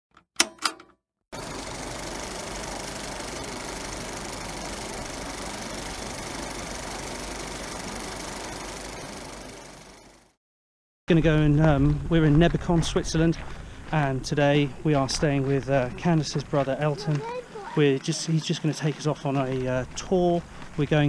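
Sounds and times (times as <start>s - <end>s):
film projector running: 1.4s - 10.4s.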